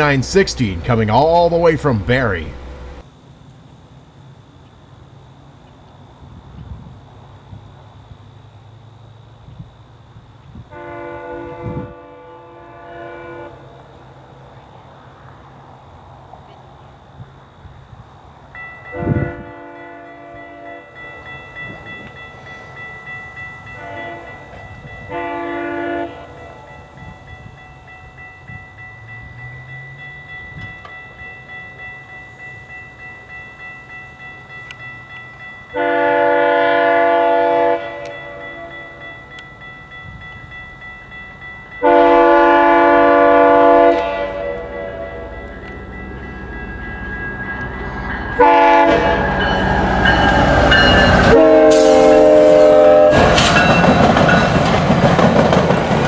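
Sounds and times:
level-crossing warning bell: 0.0s - 3.1s, 4.1s - 56.0s
locomotive rumble: 0.0s - 56.0s
train horn blasts: 10.7s - 13.8s, 18.9s - 21.0s, 23.7s - 26.8s, 35.7s - 39.1s, 41.8s - 45.4s, 48.3s - 53.7s.

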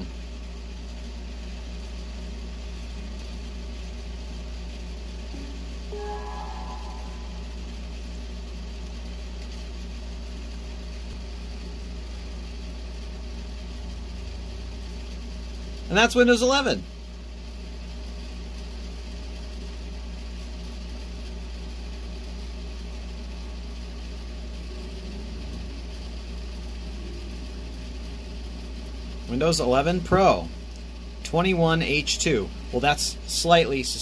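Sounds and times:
low background hum: 0.0s - 34.0s
faint cluster of tones: 5.4s - 8.1s.

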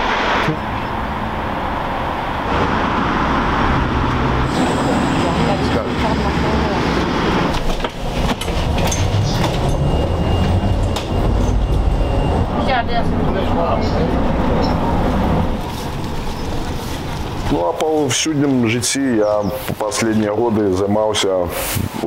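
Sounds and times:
tram rumbling on rails: 0.0s - 21.4s
clicks of tram wheels: 7.4s - 12.0s.

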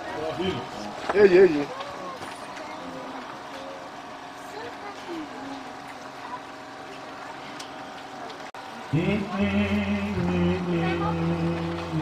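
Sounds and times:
crowd chatter: 0.0s - 12.0s
low steady hum: 7.2s - 12.0s.

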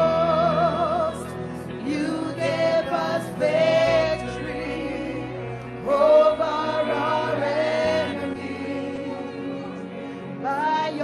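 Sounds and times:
group singing gospel: 0.0s - 11.0s.

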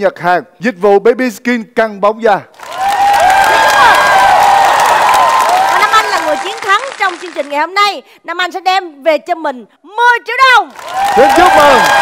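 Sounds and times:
voices cheering: 2.6s - 7.0s, 10.7s - 12.0s
audience applauding: 2.6s - 7.6s, 10.7s - 12.0s.

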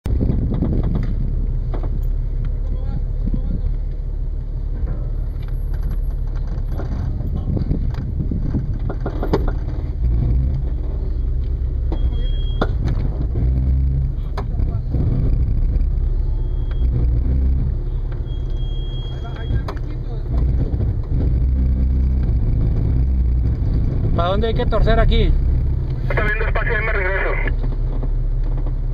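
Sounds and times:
engine rumbling at low revs: 0.0s - 28.9s.

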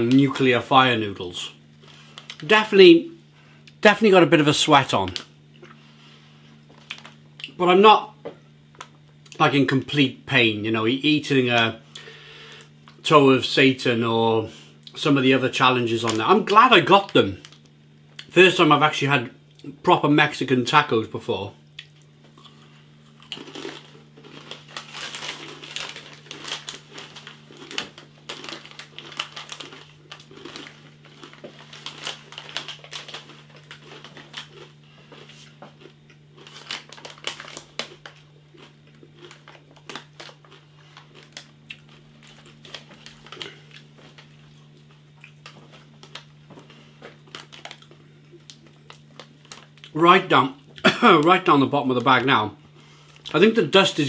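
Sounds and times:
faint low hum: 0.0s - 54.0s
foil bag crinkling: 1.7s - 2.7s, 6.0s - 7.2s, 15.2s - 17.7s, 23.1s - 54.0s
chips being chewed: 1.8s - 2.5s, 6.7s - 7.6s, 21.7s - 50.0s.

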